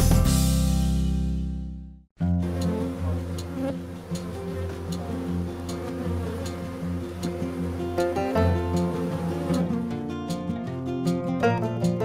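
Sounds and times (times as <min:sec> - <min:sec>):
bee buzzing: 0:02.3 - 0:10.4.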